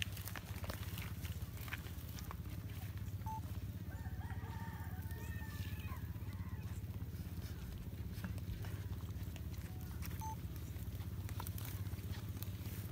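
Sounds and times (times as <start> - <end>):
rooster crowing: 3.7 - 6.8
steady low rumble: 5.9 - 12.9.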